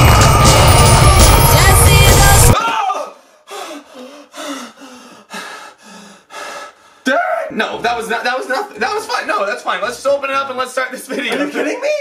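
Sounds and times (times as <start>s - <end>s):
man breathing hard: 3.1s - 7.1s.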